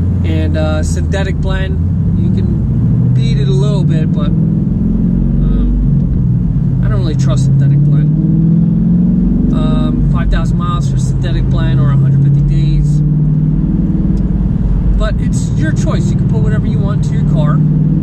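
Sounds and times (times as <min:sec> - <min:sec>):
car engine and road noise: 0:00.0 - 0:18.0
man talking: 0:00.2 - 0:02.6, 0:03.2 - 0:04.3, 0:05.4 - 0:05.9, 0:06.8 - 0:08.1, 0:09.5 - 0:13.0, 0:15.0 - 0:17.6.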